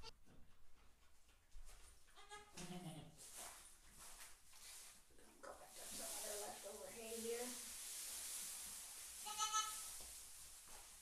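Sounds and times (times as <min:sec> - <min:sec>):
goat bleating: 0:02.2 - 0:03.2, 0:09.2 - 0:09.8.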